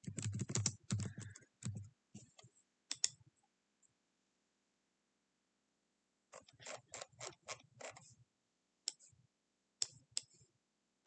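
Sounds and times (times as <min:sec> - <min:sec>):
computer mouse clicks: 0:02.9 - 0:03.2.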